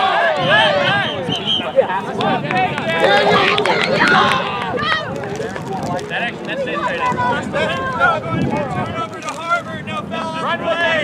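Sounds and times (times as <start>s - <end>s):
voices calling and shouting: 0.0s - 11.0s.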